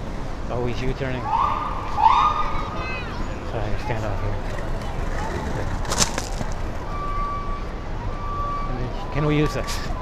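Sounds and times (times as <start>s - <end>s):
skates rolling over pavement: 4.1s - 6.8s.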